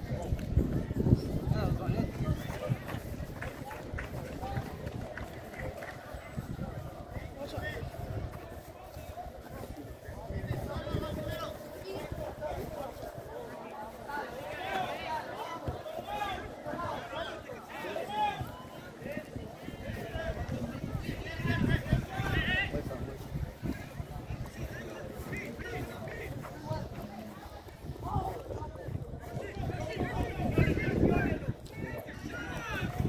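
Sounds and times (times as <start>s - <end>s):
boys chattering and calling: 4.7s - 33.0s.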